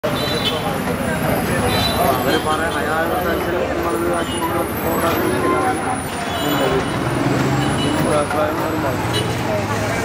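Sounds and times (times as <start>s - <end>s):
people chattering: 0.0s - 10.0s
street traffic: 0.0s - 10.0s.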